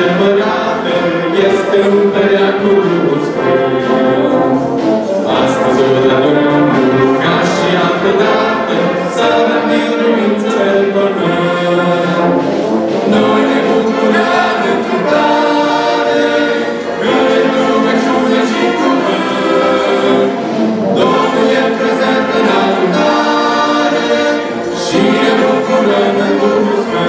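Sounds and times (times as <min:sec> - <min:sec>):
brass band playing a hymn: 0:00.0 - 0:27.0.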